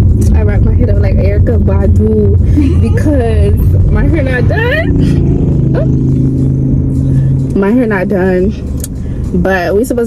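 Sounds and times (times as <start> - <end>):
car engine hum inside cabin: 0.0 - 10.0.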